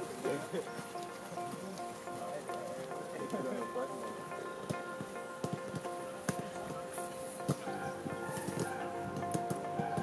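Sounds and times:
faint voices: 0.0s - 10.0s
music with long held notes: 0.0s - 10.0s.

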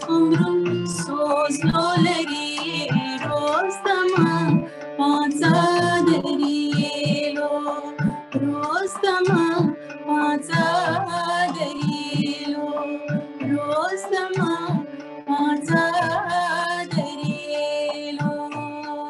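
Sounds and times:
tabla: 0.0s - 19.0s
woman singing: 0.0s - 19.0s.

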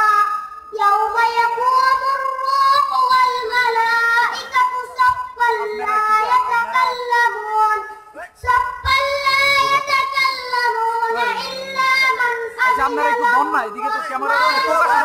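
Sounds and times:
boy chanting melodically: 0.0s - 15.0s.

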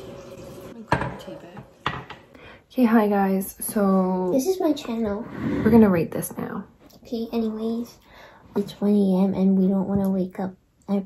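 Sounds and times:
kitchenware knocking: 0.9s - 2.3s.

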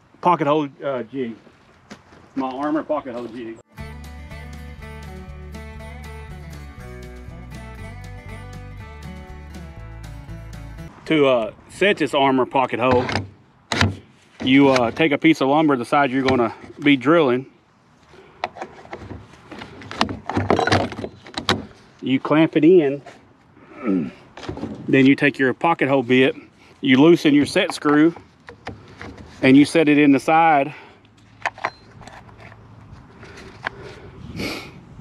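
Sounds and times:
handling of a wooden jig: 18.4s - 22.0s, 27.4s - 29.5s.

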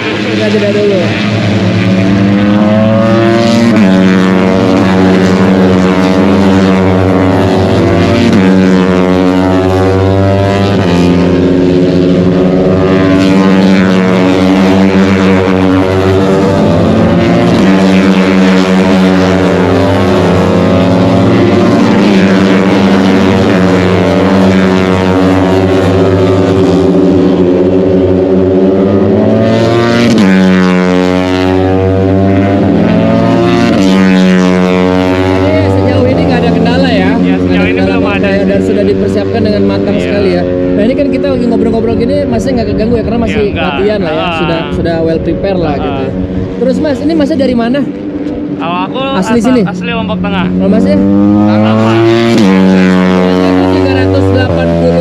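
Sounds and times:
racing motorcycles at high revs: 0.0s - 55.0s.

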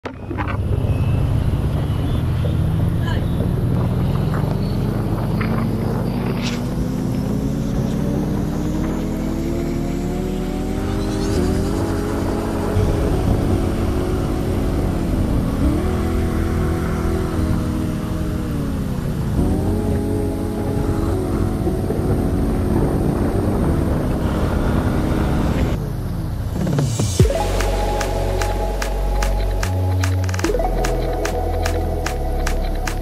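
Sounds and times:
scooter engine cruising: 0.0s - 33.0s
wind and road noise: 0.0s - 33.0s.

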